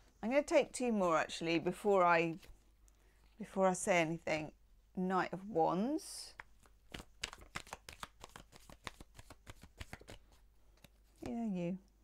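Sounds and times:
cards being shuffled: 2.3s - 2.6s, 6.3s - 11.4s.

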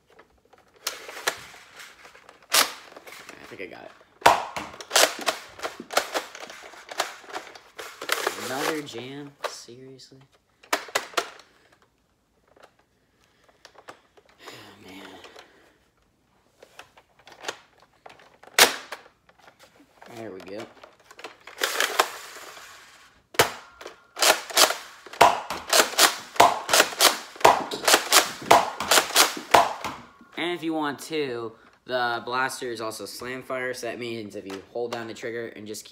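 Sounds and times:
toy blaster shot: 4.3s - 6.3s, 24.2s - 30.0s
toy blaster handling clicks: 23.8s - 29.5s.

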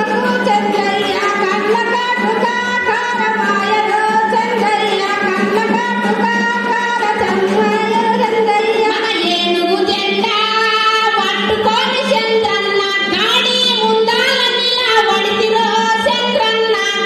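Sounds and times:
woman singing into microphone: 0.0s - 17.0s.

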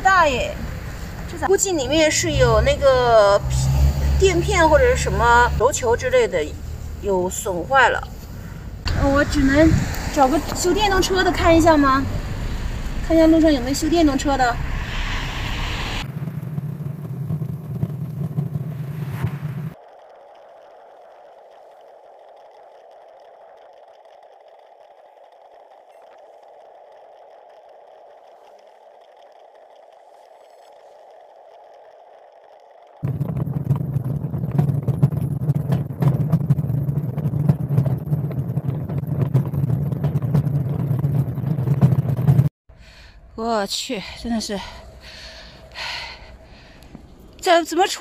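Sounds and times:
bicycle and trailer rattling: 0.0s - 14.9s, 16.0s - 42.5s
road rumble: 0.0s - 48.0s
quiet steady hum: 42.8s - 48.0s.

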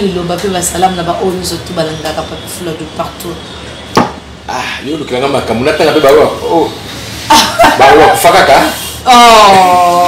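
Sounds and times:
people talking: 0.0s - 3.4s
sharp knock: 3.9s - 4.2s.

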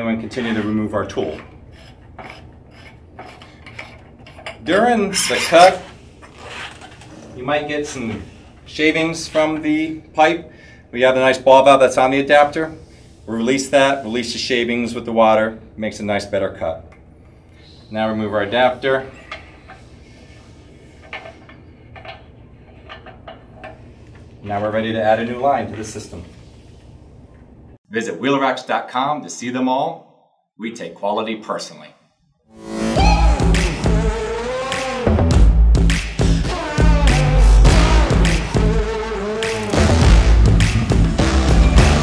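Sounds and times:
metal-on-metal rubbing: 0.2s - 7.3s, 18.5s - 24.0s.

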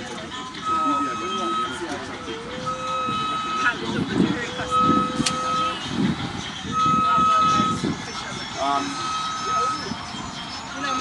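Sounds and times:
electronic beeps: 0.6s - 6.0s, 6.7s - 11.0s.

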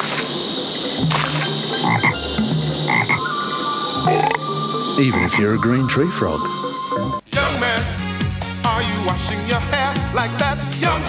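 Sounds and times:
tree frog croaking: 0.0s - 7.3s.

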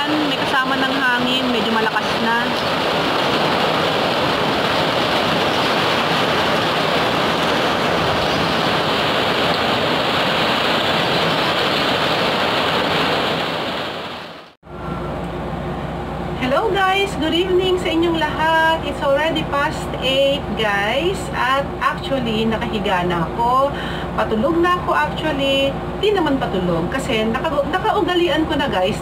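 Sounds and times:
heavy rain: 0.0s - 14.6s
strong wind: 0.0s - 17.1s.

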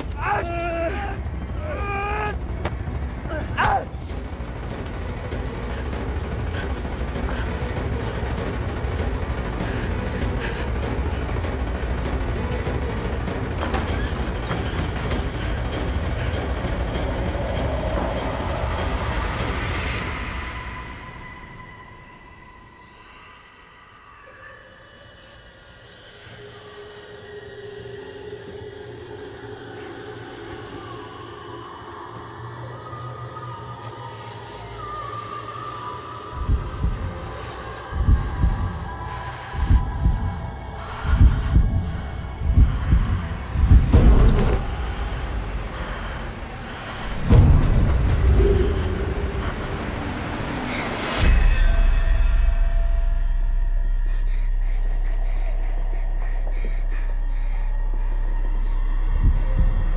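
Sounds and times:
low rumble: 0.0s - 24.0s, 25.8s - 59.9s.

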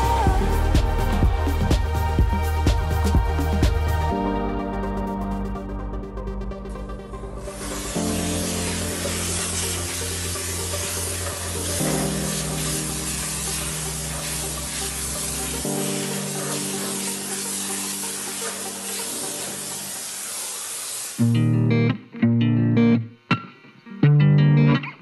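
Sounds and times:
background music: 0.0s - 23.0s
steam hissing from nozzle: 7.4s - 21.3s.

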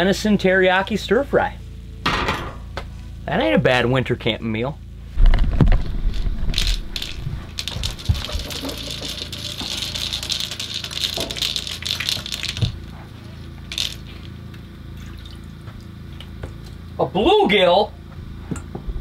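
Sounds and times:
fish slapping: 5.2s - 13.0s
water splashing and dripping: 6.6s - 12.9s.

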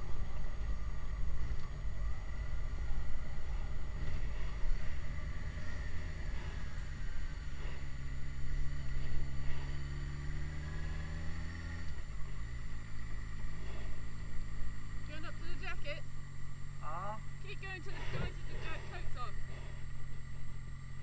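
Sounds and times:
motorcycle engine at low revs: 0.0s - 21.0s.

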